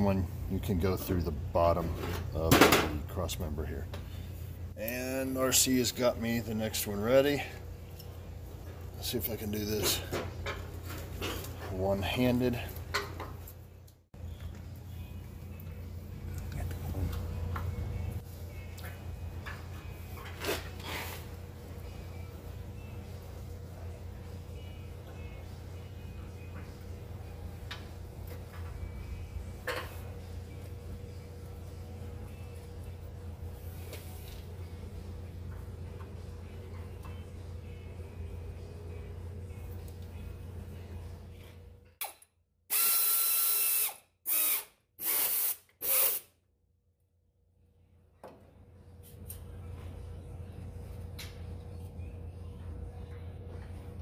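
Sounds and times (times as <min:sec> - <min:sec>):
steady low hum: 0:00.0 - 0:41.9, 0:47.5 - 0:54.0
power ratchet motor whine: 0:42.7 - 0:46.3.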